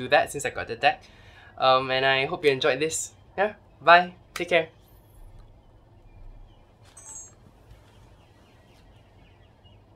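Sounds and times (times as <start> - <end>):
low hum: 3.1 - 9.9.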